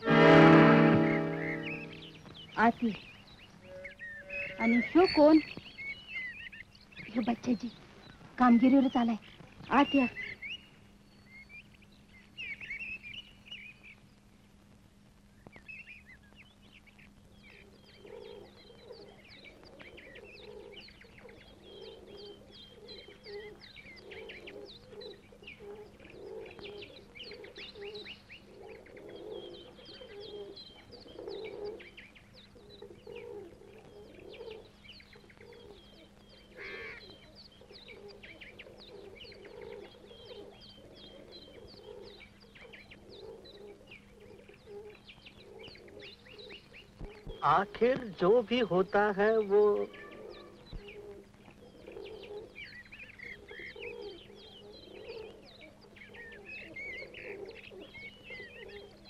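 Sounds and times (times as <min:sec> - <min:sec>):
doves cooing: 0:00.0 - 0:10.5, 0:17.4 - 0:59.0
small birds chirping: 0:00.0 - 0:59.0.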